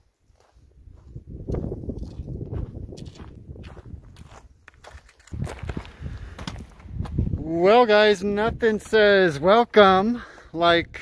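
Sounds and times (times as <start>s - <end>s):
footsteps on gravel trail: 0.0s - 10.7s.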